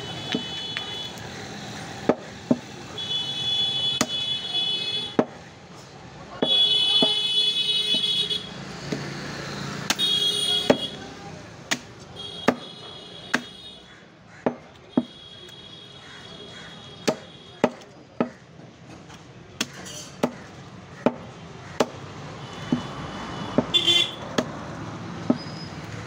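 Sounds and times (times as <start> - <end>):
cleaver chopping into wood block: 11.7 - 12.7, 17.0 - 18.4, 19.6 - 22.0.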